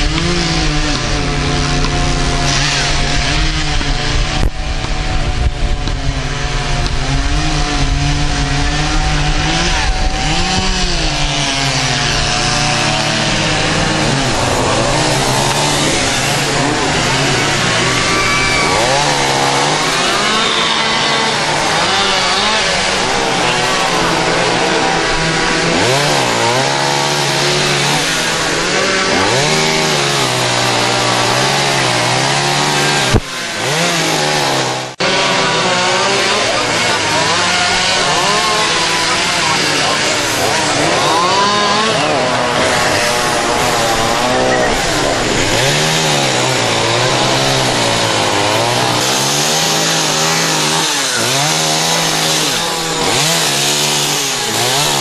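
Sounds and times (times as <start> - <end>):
chainsaws revving: 0.0 - 55.0.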